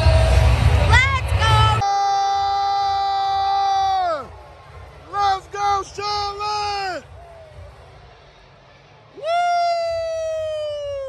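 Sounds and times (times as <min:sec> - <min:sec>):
person shouting woo: 0:09.2 - 0:11.0.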